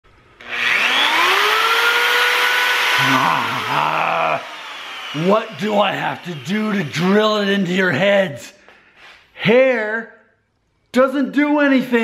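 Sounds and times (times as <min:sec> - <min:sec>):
electric drill motor whine: 0:00.2 - 0:07.4.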